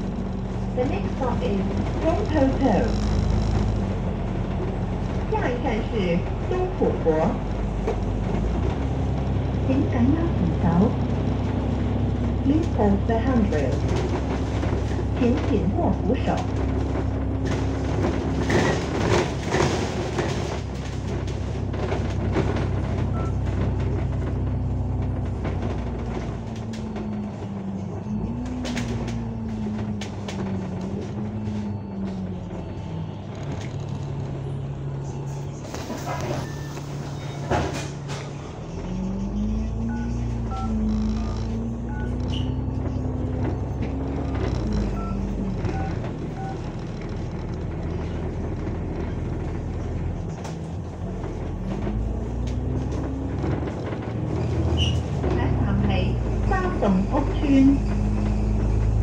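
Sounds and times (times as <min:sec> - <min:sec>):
bus body knocks and rattles: 0:00.0 - 0:34.6, 0:35.6 - 0:38.6, 0:40.3 - 0:59.0
bus engine drone: 0:00.0 - 0:59.0.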